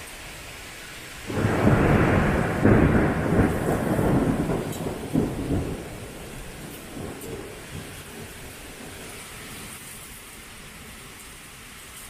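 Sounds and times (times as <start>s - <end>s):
torrential rain hiss: 0.0s - 12.0s
thunder rumbling: 1.3s - 9.8s.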